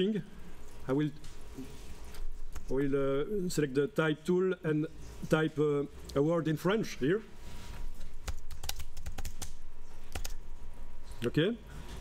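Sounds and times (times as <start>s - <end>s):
keyboard keystrokes: 8.2s - 10.4s.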